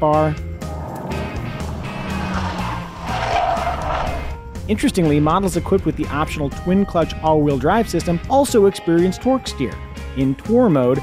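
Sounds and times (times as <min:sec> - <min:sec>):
car engine on track: 0:00.6 - 0:06.6
tyre noise: 0:00.8 - 0:04.4.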